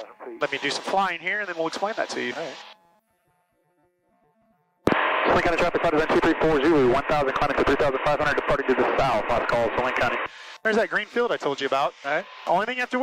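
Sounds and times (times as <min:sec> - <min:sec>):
voice over aircraft radio: 0:00.0 - 0:02.6, 0:05.3 - 0:13.0.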